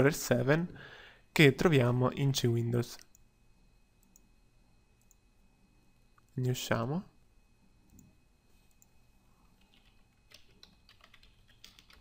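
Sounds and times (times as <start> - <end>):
faint keyboard typing: 7.8 - 12.0.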